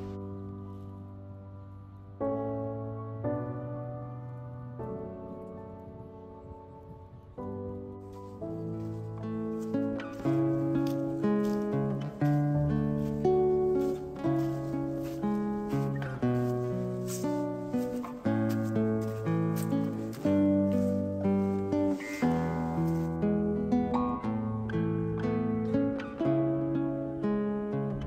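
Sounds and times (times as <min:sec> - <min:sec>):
plucked string melody: 0:07.9 - 0:28.0.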